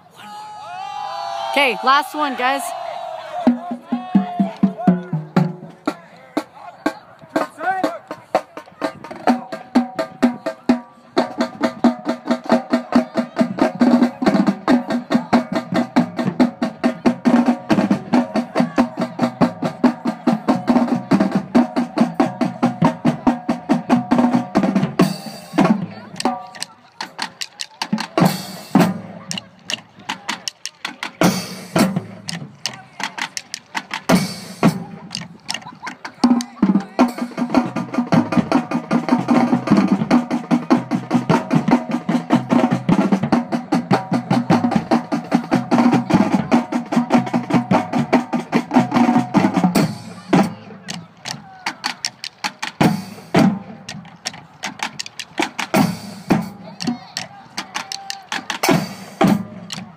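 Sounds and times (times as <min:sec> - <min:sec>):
snare drum strokes and rolls: 0:03.4 - 0:59.9.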